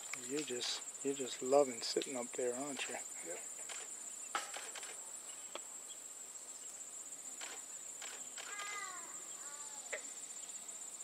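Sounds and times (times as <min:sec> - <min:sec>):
insect chorus trilling: 0:00.0 - 0:11.0
faint clicks: 0:07.4 - 0:08.8
short falling calls: 0:08.4 - 0:10.0.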